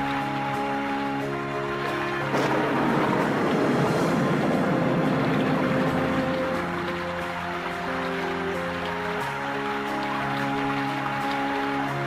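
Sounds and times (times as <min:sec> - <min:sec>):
thunder rumbling: 0:01.3 - 0:10.7.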